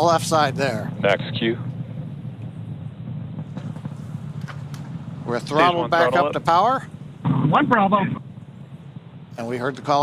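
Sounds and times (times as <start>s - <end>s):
rocket engine rumble: 0.0s - 10.0s.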